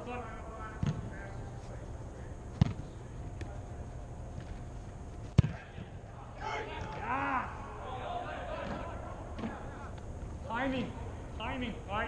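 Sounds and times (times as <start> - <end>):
ball being kicked: 2.5 - 3.0, 5.2 - 5.9.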